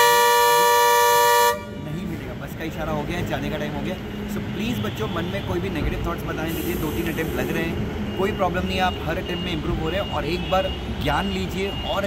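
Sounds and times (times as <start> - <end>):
bus horn blast: 0.0 - 1.9.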